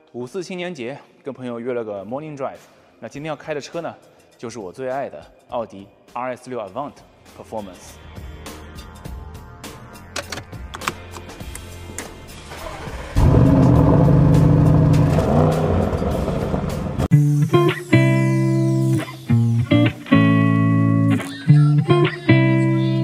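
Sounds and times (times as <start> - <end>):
car engine starting: 12.2 - 17.1
electric guitar music: 13.2 - 23.0.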